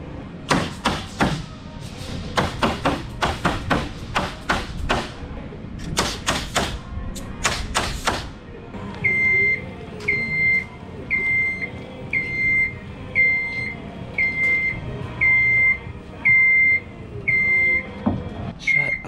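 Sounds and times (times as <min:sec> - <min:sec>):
high electronic alarm beeps: 0:09.0 - 0:17.9.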